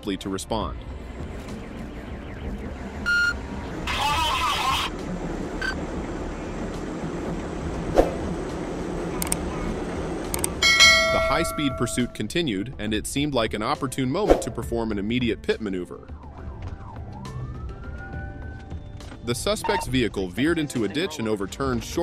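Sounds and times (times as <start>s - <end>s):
road and engine noise: 0.0s - 22.0s
sharp click: 9.2s - 9.4s, 10.3s - 10.6s
bell-like chime: 10.6s - 12.3s
short electronic beep: 11.0s - 12.2s.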